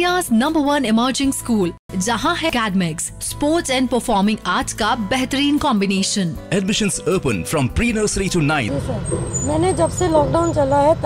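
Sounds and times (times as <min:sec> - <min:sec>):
woman speaking: 0:08.7 - 0:11.0.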